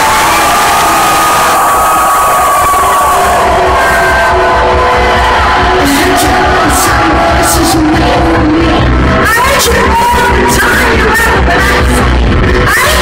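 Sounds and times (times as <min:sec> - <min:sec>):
crowd cheering and screaming: 0:00.0 - 0:13.0.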